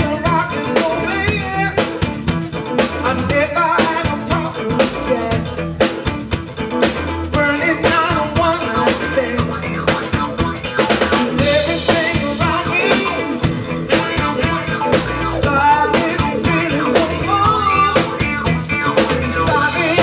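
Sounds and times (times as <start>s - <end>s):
bending lead melody: 0.0s - 20.0s
drum kit groove: 0.0s - 20.0s
electric bass line: 0.0s - 20.0s.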